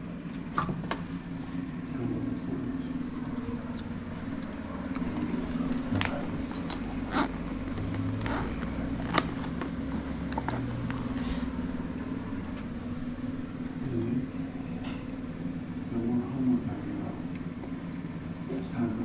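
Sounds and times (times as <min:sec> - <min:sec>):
blower fan humming: 0:00.0 - 0:19.0
handling clicks and knocks: 0:04.4 - 0:11.3.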